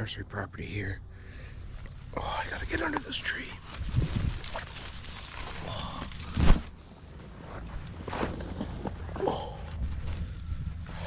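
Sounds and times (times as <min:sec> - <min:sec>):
brush rustling against camera: 0:01.8 - 0:09.2.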